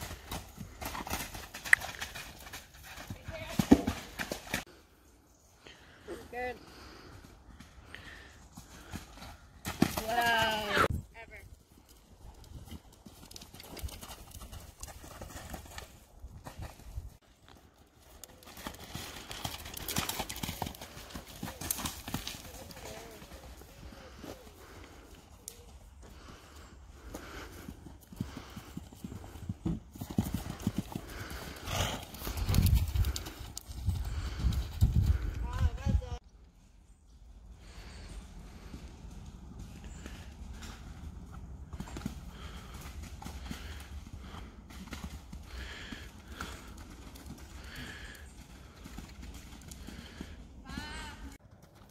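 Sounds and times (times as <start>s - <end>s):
horse hooves cantering: 0.0s - 4.8s, 6.4s - 36.2s, 37.6s - 51.9s.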